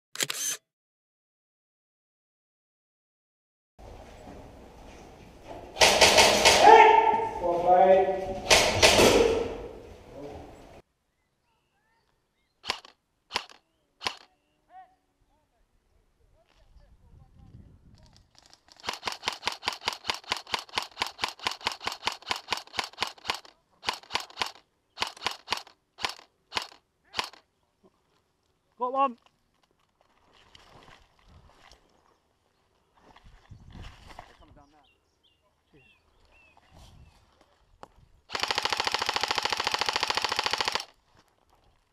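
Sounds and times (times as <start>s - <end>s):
airsoft rifle shooting: 5.8s - 7.3s, 8.4s - 9.8s, 12.6s - 14.4s, 18.8s - 27.4s, 38.3s - 41.0s
person shouting: 6.6s - 7.4s.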